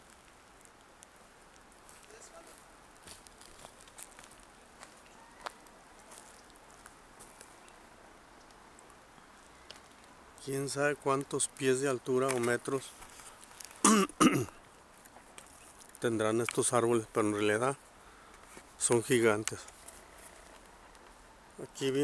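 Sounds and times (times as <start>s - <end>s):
faint small clicks and crackles: 0.0s - 13.8s, 14.5s - 21.3s
quiet forest ambience: 0.0s - 22.0s.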